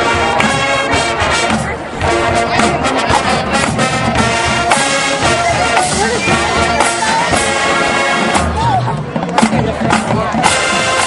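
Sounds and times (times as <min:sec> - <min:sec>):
brass chords: 0:00.0 - 0:11.0
drumline: 0:00.0 - 0:11.0.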